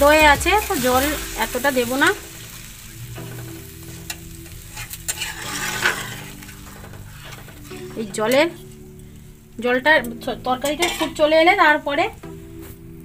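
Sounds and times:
curry sizzling in a pan: 0.0 - 13.0.

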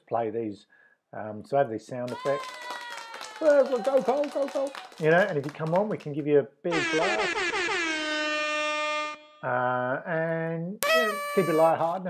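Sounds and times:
air horn blast: 10.8 - 12.0.

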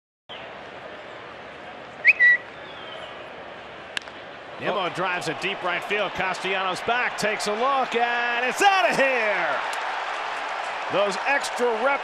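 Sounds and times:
ballpark crowd noise: 0.3 - 12.0
two-note whistle: 2.0 - 2.5.

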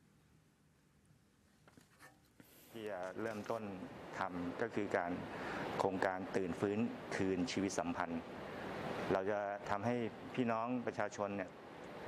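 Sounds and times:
man speaking: 2.7 - 8.3, 9.1 - 11.5.

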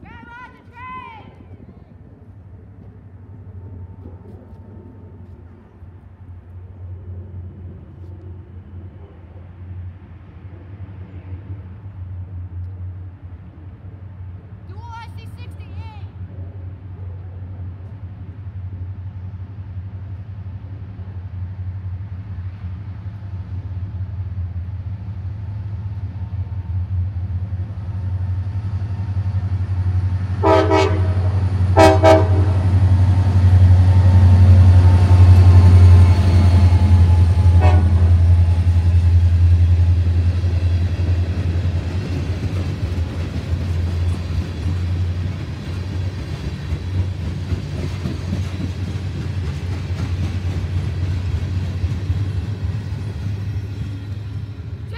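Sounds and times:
diesel locomotive engine drone: 0.0 - 54.9
rumble and clatter of rail cars: 0.0 - 54.9
train horn blasts: 30.4 - 32.8, 37.0 - 38.7.

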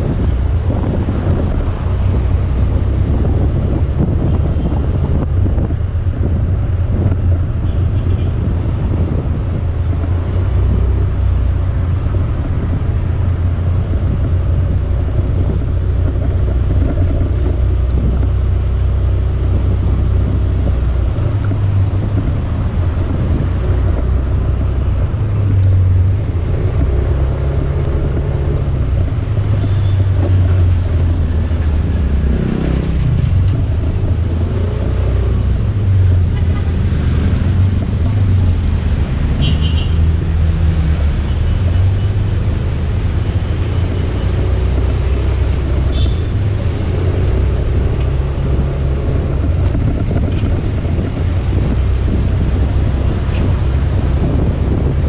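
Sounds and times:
motor traffic: 0.0 - 55.0
vehicle engine revving: 0.0 - 55.0
wind rumble on microphone: 0.0 - 55.0.

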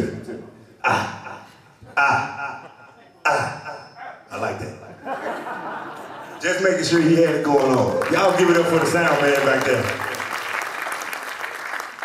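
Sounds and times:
man's wordless calls with delay: 0.8 - 4.3.

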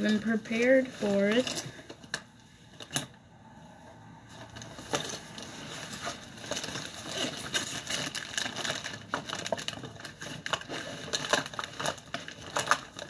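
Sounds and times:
rummaging through bag: 0.0 - 3.0, 4.3 - 13.0.

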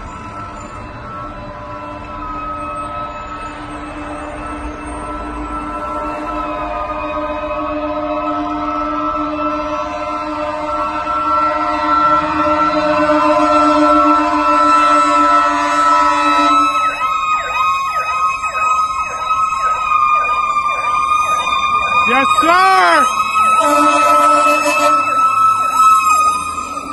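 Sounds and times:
fire engine sirens: 0.0 - 26.9.

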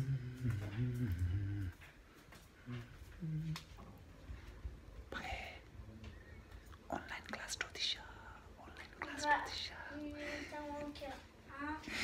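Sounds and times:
person whispering: 5.1 - 5.7, 6.9 - 10.0.

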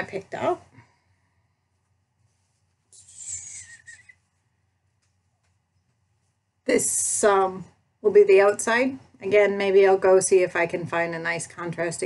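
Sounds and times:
fabric rustling: 1.7 - 2.9.

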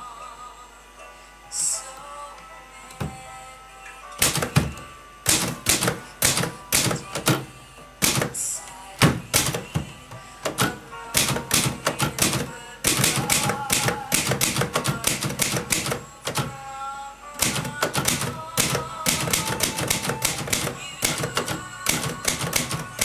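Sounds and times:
manual typewriter typing: 4.2 - 16.6, 17.4 - 23.0.

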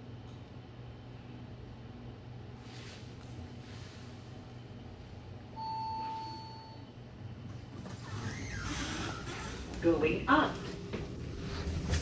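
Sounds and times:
low steady hum: 0.0 - 12.0
elevator arrival chime: 5.5 - 7.0.

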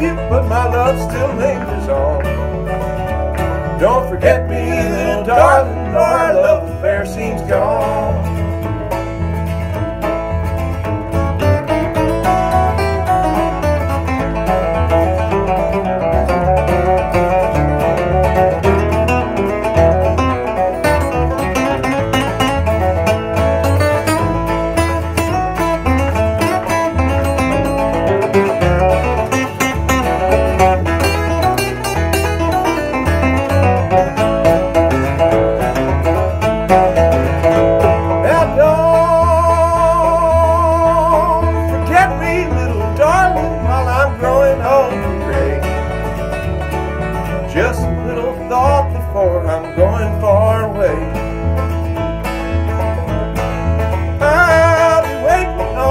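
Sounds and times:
acoustic guitars: 0.0 - 55.9
banjo picking: 0.0 - 55.9
bass guitar: 0.0 - 55.9.

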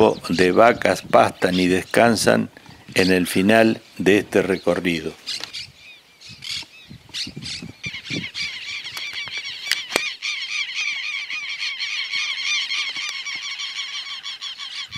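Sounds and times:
flock of birds calling: 0.0 - 14.9.

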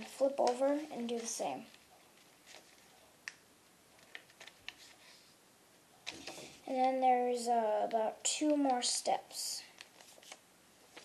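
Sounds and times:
paper being folded and creased: 0.0 - 3.0, 4.0 - 5.2, 9.8 - 11.0.

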